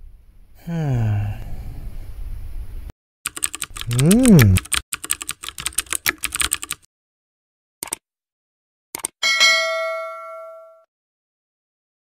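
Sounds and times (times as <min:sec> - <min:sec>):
keyboard typing: 0:03.3 - 0:06.9
bell ding: 0:09.2 - 0:10.9.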